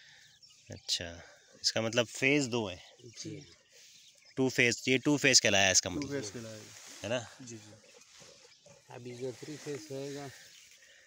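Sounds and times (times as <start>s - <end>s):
faint outdoor background: 0.0s - 11.0s
man's voice: 4.4s - 7.8s.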